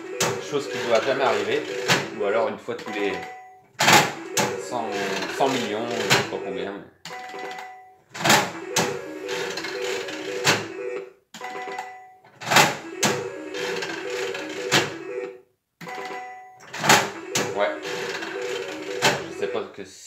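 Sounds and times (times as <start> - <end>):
slot machine lever clack: 0.0 - 2.2, 2.8 - 6.4, 7.1 - 10.7, 11.4 - 15.0, 15.8 - 19.5
short electronic tune: 0.0 - 2.3, 4.0 - 6.7, 8.4 - 11.0, 17.0 - 19.6.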